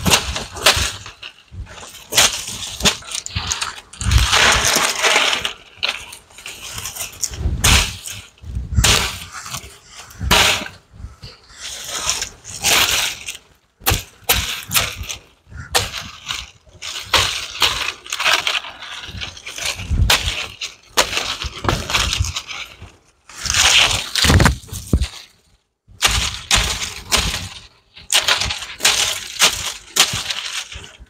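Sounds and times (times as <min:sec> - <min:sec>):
dry palm fronds rustling: 0:00.0 - 0:31.0.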